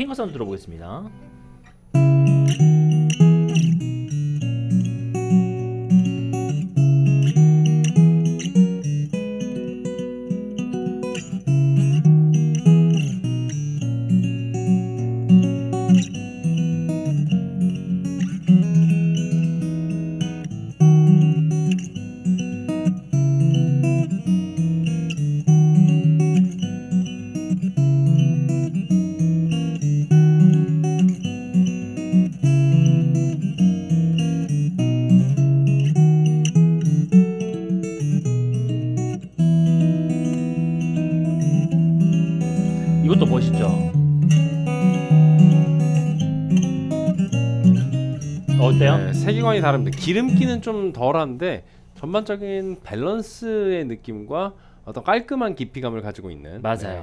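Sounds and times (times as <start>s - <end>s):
fingerstyle acoustic guitar: 1.0s - 52.2s.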